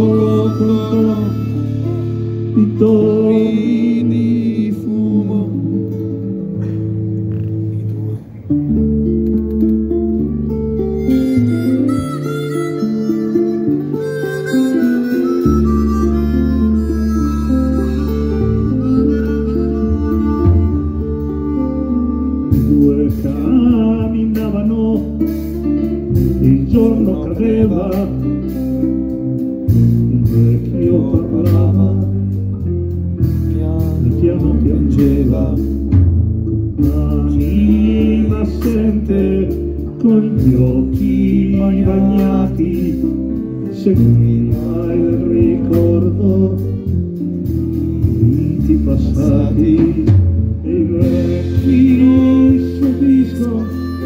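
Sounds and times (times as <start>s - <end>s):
live band playing instrumental: 0.0s - 54.0s.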